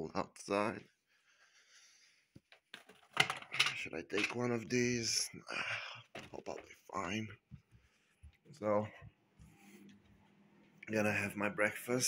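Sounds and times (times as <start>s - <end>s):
man speaking: 3.8s - 7.4s, 8.5s - 9.0s, 10.8s - 12.0s.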